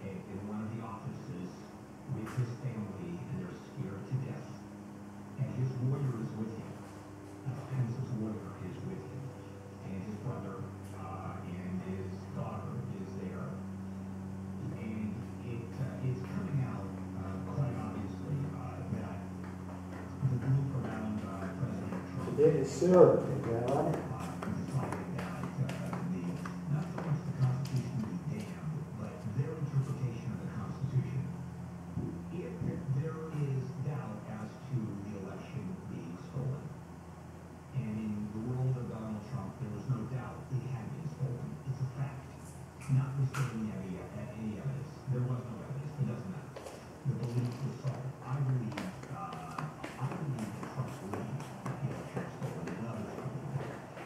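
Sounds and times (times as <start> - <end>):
faint indistinct radio speech: 0.0 - 13.8, 14.5 - 36.8, 37.7 - 54.0
steady low hum: 0.0 - 54.0
person talking on radio: 20.3 - 30.8.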